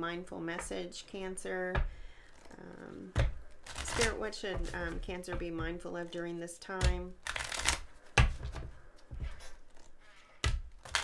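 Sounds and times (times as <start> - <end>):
cards being shuffled: 3.2 - 5.0, 7.2 - 11.0.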